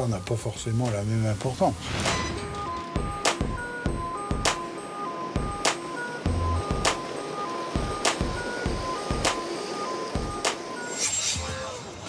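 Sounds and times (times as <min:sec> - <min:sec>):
electronic music with steady beat: 0:02.6 - 0:12.0.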